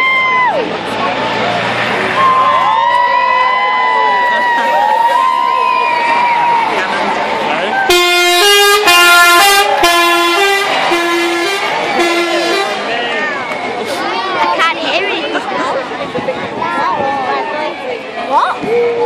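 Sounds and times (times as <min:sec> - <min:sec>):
crowd shouting and cheering: 0:00.0 - 0:19.0
coach musical horn: 0:07.9 - 0:12.9.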